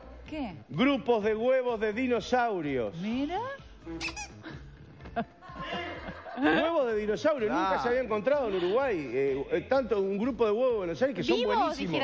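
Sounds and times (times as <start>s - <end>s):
short high-pitched squeaks: 3.9s - 4.4s.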